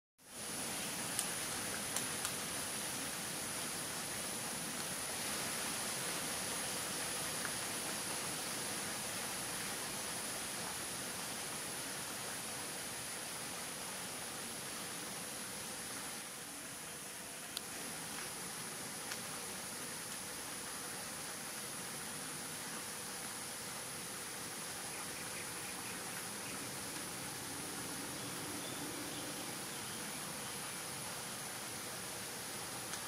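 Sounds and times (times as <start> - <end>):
faint ticks: 1.1 - 2.4, 19.0 - 19.3
river rushing: 25.6 - 33.0.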